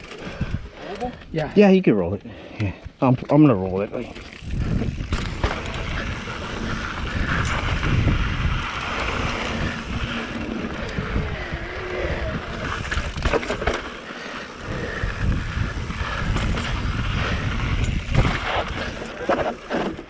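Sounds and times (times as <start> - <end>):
bike frame rattle: 0.0 - 0.8, 12.5 - 20.0
bike tyre rumble on dirt: 3.6 - 20.0
wind buffeting microphone: 4.2 - 13.7, 14.6 - 19.0.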